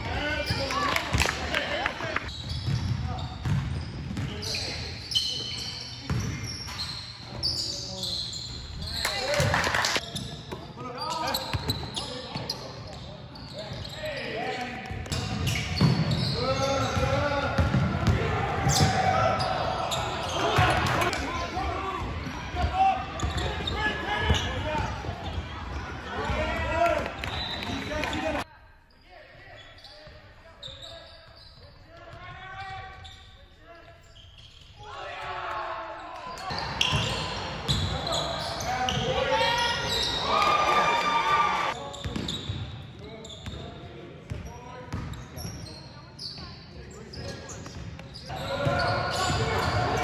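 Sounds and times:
players' voices: 0:00.0 - 0:50.0
ball bouncing on hardwood court: 0:02.6 - 0:04.3, 0:17.0 - 0:19.0.

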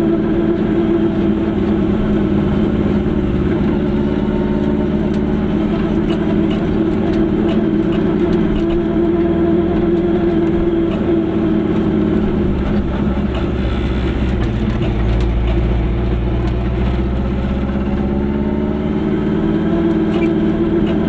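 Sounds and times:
car engine drone inside cabin: 0:00.0 - 0:21.0
road noise: 0:00.0 - 0:21.0.

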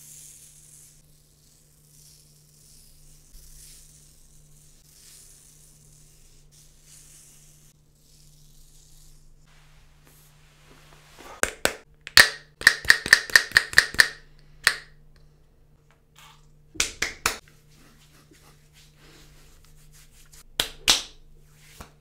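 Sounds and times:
palms slapping bald scalp: 0:11.4 - 0:15.0, 0:16.8 - 0:17.5, 0:20.6 - 0:21.2.

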